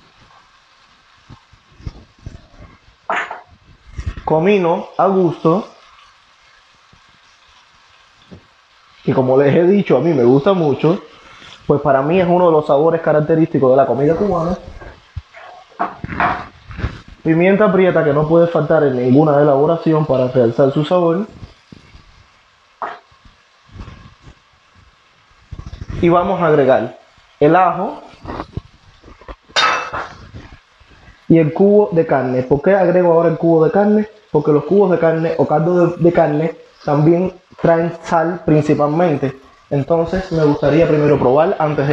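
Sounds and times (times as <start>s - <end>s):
food frying in oil: 0.0s - 41.9s.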